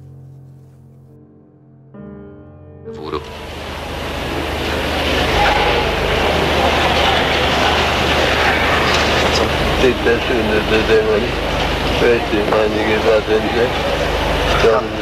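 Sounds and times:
man speaking: 2.9s - 3.3s, 9.8s - 11.4s
recording hiss and low hum: 2.9s - 15.0s
faint voices: 3.0s - 15.0s.

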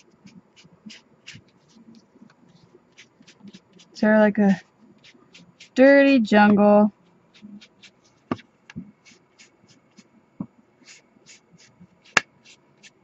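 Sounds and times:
sponge scuffing card edges: 0.0s - 5.8s, 7.3s - 10.1s, 10.8s - 13.0s.

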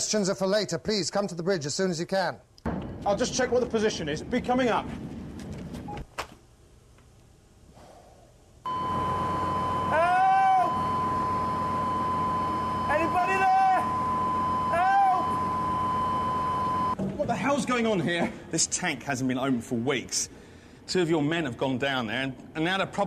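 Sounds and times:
outdoor background noise: 0.0s - 23.0s
steady high tone: 8.7s - 17.0s.

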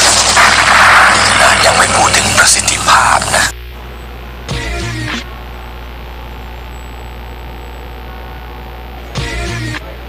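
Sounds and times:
steady low hum: 0.0s - 10.0s
thin high-pitched whine: 0.0s - 10.0s.

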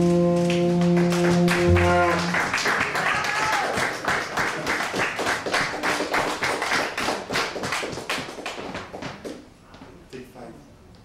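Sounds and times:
people clapping: 0.3s - 9.5s.

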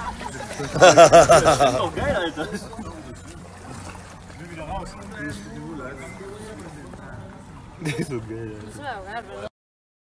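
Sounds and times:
murmured voices talking: 0.1s - 9.5s.

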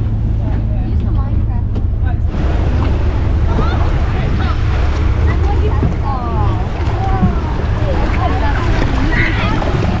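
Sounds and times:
wind on microphone: 0.0s - 10.0s
people talking: 0.4s - 2.3s, 3.5s - 10.0s
seawater splashing around legs: 2.3s - 10.0s.

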